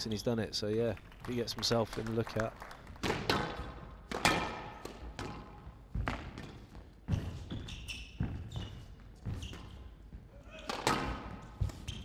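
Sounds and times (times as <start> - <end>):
squash ball cracking off rackets: 3.0 - 6.4, 10.6 - 11.8
shoes squeaking on court floor: 3.5 - 12.0.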